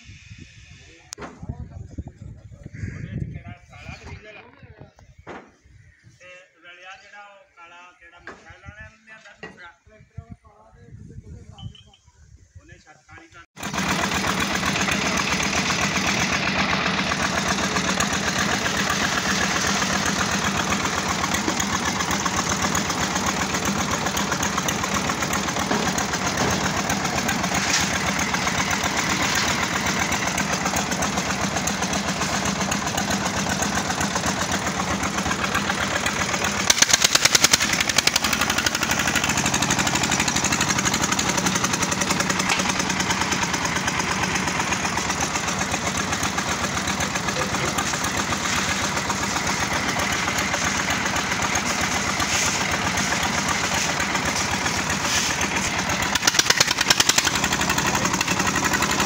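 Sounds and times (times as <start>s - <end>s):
diesel engine running under load: 13.6s - 59.0s.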